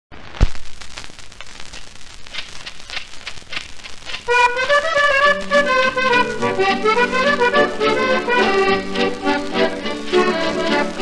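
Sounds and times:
record surface crackle: 0.1s - 11.0s
loud record pop: 0.2s - 11.0s.

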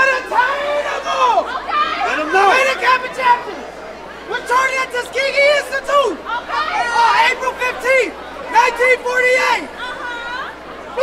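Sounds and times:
young men chanting and calling out: 0.0s - 11.0s.

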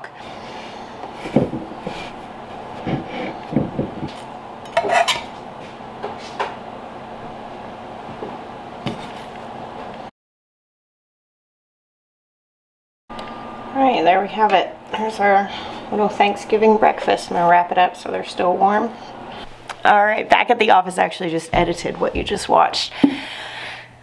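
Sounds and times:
steady background hum: 0.0s - 10.1s, 13.1s - 24.0s
scattered knocks: 2.9s - 4.2s
metal utensil scraping baking sheet: 4.8s - 5.3s.

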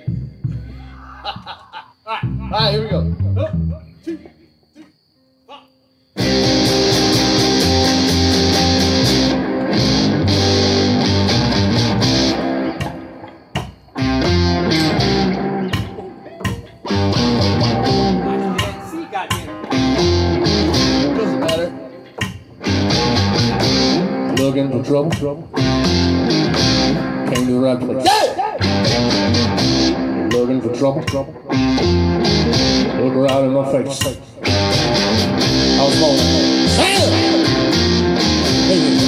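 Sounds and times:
bass and guitars trio playing: 0.0s - 1.5s, 2.1s - 4.3s, 6.2s - 39.0s.

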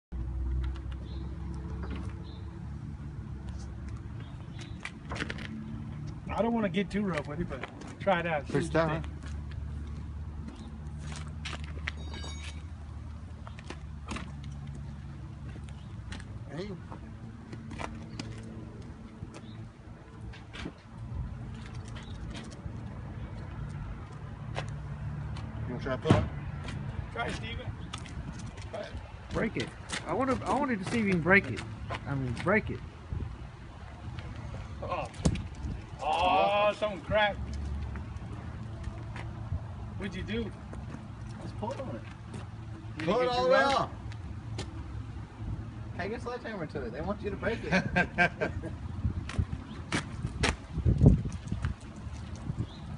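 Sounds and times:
vehicle engine hum: 0.1s - 52.9s
high squeak: 12.0s - 12.7s.

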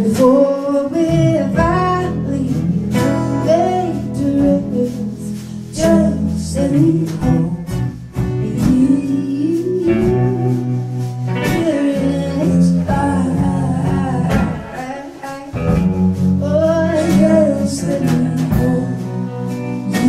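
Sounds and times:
acoustic guitar: 0.0s - 20.0s
woman singing: 0.0s - 20.0s.

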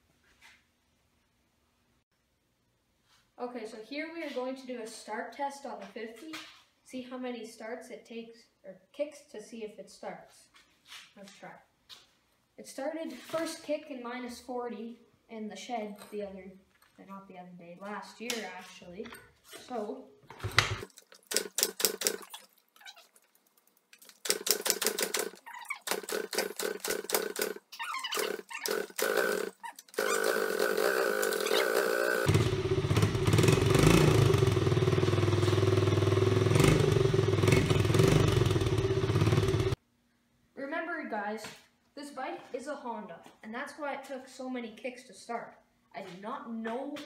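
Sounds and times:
kick starter rattle: 20.8s - 22.2s, 24.1s - 39.8s
small motorbike engine running: 24.3s - 39.8s.

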